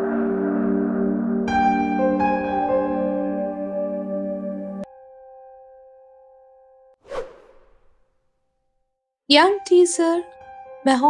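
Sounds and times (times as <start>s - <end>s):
whoosh sweep of noise: 7.1s - 8.0s.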